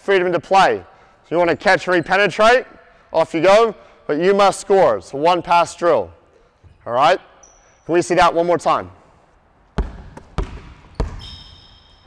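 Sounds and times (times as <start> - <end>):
basketball bouncing on wooden floor: 9.8 - 12.0.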